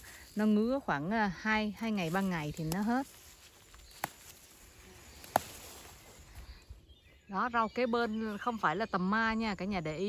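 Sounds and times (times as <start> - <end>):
faint rustling of leaves: 0.0 - 8.7.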